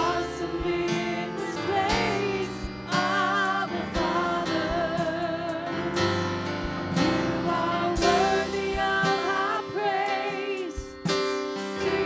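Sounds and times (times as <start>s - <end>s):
instrumental accompaniment: 0.0s - 12.0s
women singing worship song: 0.0s - 12.0s.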